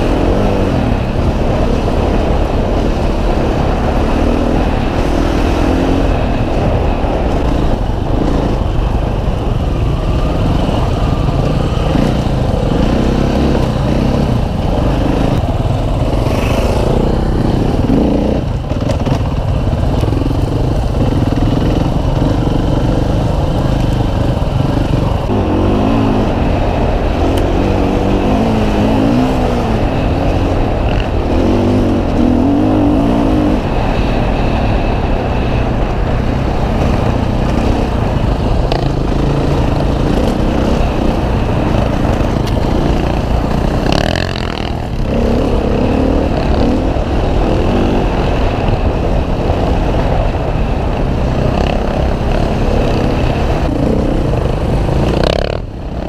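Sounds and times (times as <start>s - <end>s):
motorcycle engine revving: 0.0s - 56.0s.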